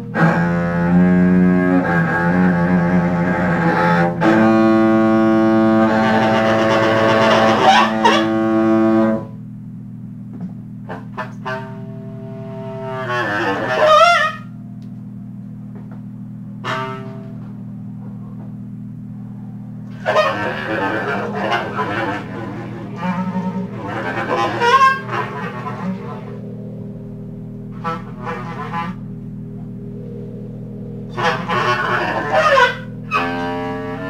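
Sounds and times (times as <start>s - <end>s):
bowled double bass jazz: 0.0s - 34.0s.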